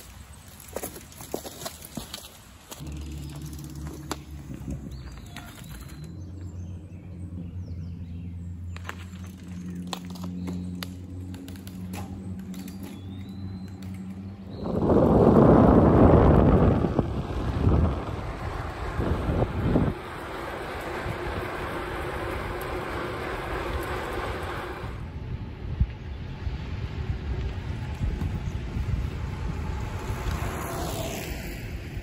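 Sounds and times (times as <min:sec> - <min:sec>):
wind rushing over microphone: 0:02.8 - 0:08.4, 0:13.1 - 0:32.0.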